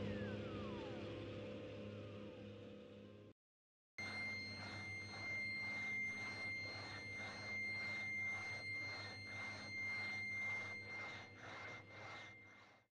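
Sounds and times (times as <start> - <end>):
low hum: 0.0 - 3.3, 4.0 - 12.9
high-pitched electronic tone: 4.0 - 12.6
pulsing hiss: 4.0 - 12.8.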